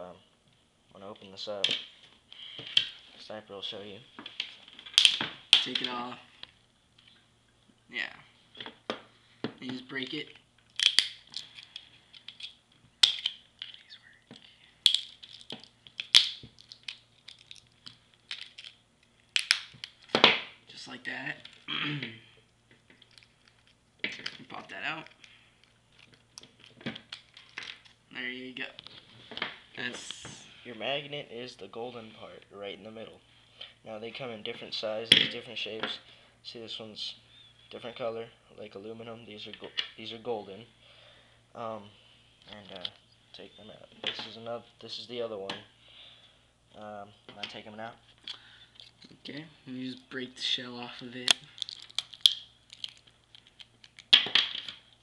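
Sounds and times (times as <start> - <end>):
plastic casing clicks and cracks: 4.8 - 6.0, 10.6 - 20.5, 22.8 - 24.4, 25.2 - 27.9, 51.1 - 55.0.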